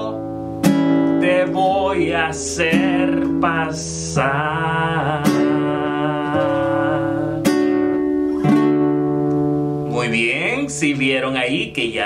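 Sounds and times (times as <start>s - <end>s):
classical guitar strumming chords: 0.0s - 12.0s.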